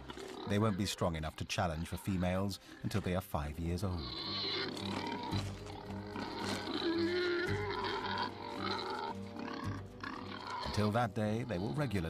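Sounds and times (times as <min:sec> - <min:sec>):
background music with held notes: 0:00.0 - 0:12.0
wild boars grunting and squealing: 0:00.0 - 0:12.0.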